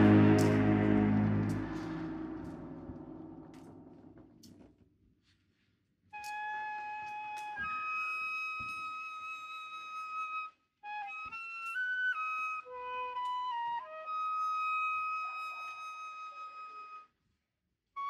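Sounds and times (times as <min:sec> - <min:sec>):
solo flute: 0:00.0 - 0:03.2, 0:06.1 - 0:17.3.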